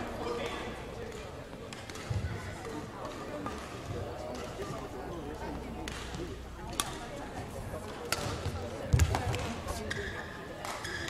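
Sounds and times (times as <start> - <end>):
rackets striking shuttlecock: 5.8 - 7.0, 7.9 - 11.0.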